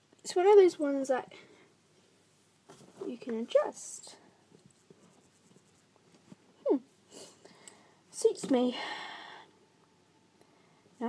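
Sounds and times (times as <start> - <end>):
faint rustling: 1.3 - 7.5.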